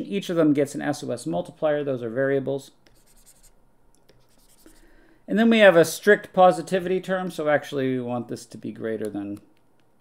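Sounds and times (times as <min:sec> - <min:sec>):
stylus scratching and tapping screen: 0:02.8 - 0:04.8.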